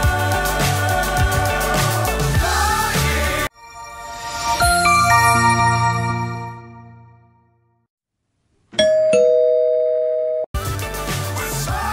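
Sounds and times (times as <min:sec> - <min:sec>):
two-note doorbell chime: 0:03.6 - 0:07.2, 0:08.8 - 0:10.5.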